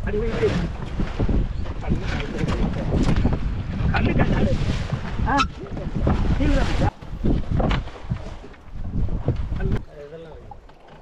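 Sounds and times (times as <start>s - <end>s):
wind rushing over microphone: 0.0s - 9.9s
sea washing around hull: 0.0s - 11.0s.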